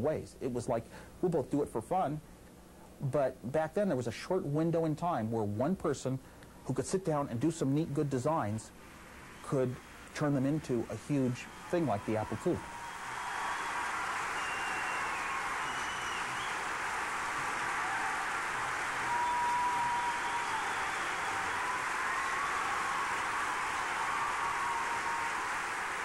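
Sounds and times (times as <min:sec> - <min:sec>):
audience applauding: 0:09.3 - 0:26.0
whistles from audience: 0:11.2 - 0:26.0.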